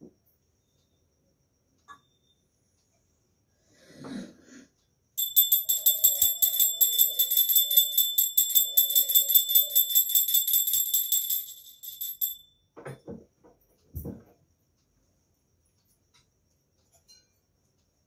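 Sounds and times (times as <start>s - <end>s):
hand bell ringing rapidly: 5.2s - 12.4s.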